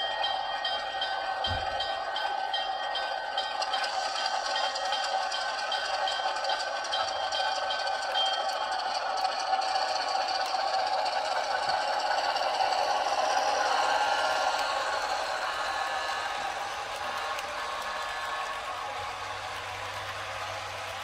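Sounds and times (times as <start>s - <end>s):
model train wheels clattering: 0.2s - 21.0s.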